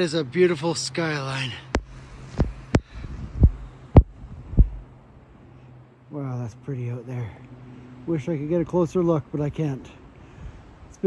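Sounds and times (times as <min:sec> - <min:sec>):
faint low hum: 0:00.0 - 0:11.0
dull thumps: 0:01.7 - 0:04.8.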